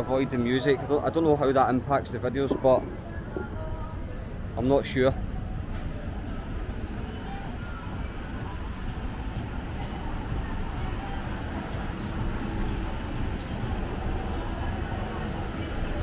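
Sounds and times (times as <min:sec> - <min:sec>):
faint voices: 0:00.0 - 0:16.0
low street rumble: 0:00.0 - 0:16.0.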